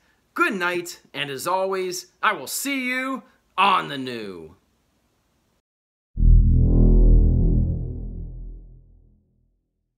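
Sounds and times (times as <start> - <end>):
deep synth boom with low chord: 6.2 - 9.3.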